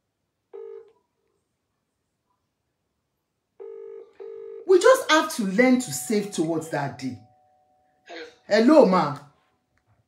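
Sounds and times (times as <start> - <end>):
phone ringing tone buzz: 0.5 - 0.9, 3.6 - 4.7.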